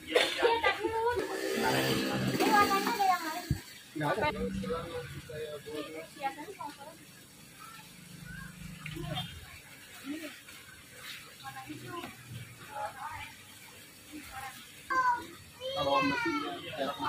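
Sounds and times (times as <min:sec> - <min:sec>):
people talking: 0:00.0 - 0:07.0, 0:07.6 - 0:10.4, 0:11.4 - 0:13.4, 0:14.1 - 0:17.0.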